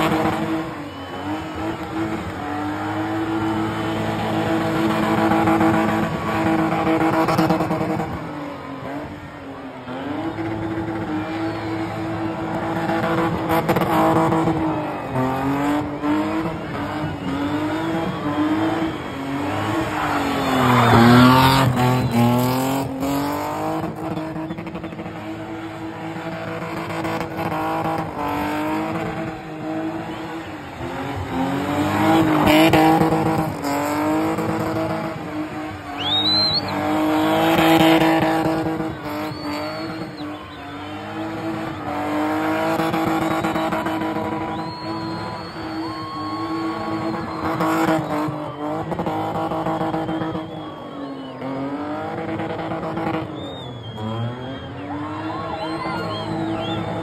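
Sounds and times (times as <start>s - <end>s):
car engine revving hard: 0.0s - 57.0s
tyres squealing and skidding: 0.0s - 57.0s.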